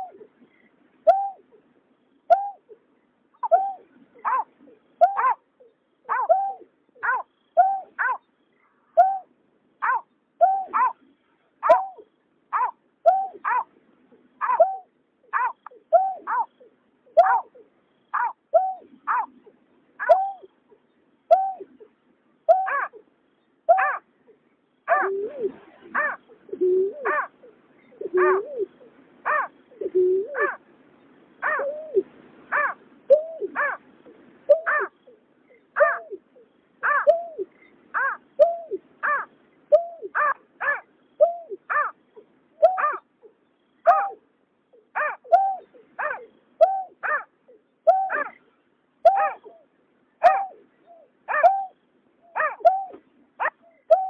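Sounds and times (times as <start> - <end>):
bird hooting notes: 0.0 - 1.6, 3.4 - 11.0, 11.6 - 13.6, 14.4 - 20.6, 21.3 - 21.9, 22.5 - 23.0, 23.7 - 30.6, 31.4 - 33.8, 34.5 - 42.0, 42.6 - 43.1, 43.8 - 48.4, 49.0 - 54.0
lower-pitched hooting call: 6.1 - 8.1, 8.9 - 10.9, 20.0 - 20.5, 22.5 - 23.0, 24.9 - 30.6, 31.4 - 33.8, 34.5 - 42.0, 42.6 - 43.0, 43.8 - 48.4, 49.1 - 54.0.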